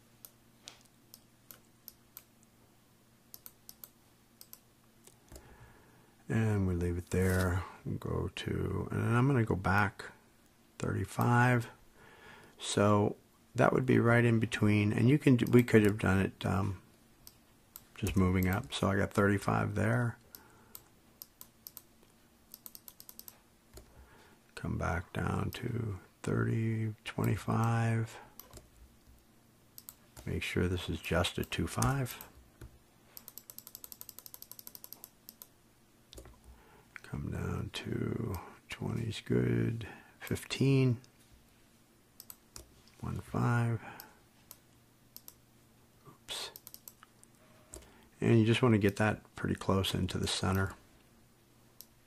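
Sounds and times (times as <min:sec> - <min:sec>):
faint computer clicks: 0:03.3 - 0:05.5, 0:20.2 - 0:21.9, 0:22.5 - 0:23.9, 0:29.8 - 0:30.3, 0:31.4 - 0:35.5, 0:42.2 - 0:43.0, 0:45.2 - 0:45.4, 0:46.5 - 0:48.0.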